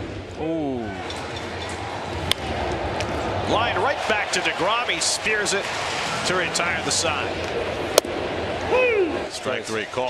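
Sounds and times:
ballpark crowd noise: 0:00.0 - 0:10.0
bat cracking on baseball: 0:01.1 - 0:03.2, 0:07.4 - 0:08.2.

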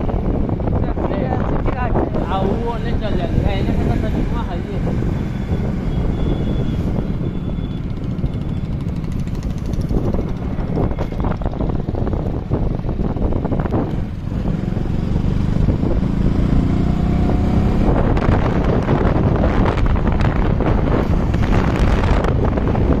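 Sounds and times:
vehicle engine and road noise: 0:00.0 - 0:23.0
wind rushing over microphone: 0:00.0 - 0:23.0.

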